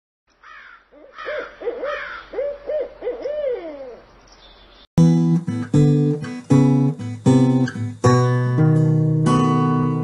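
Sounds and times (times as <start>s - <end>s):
owl hooting: 0.4s - 4.6s.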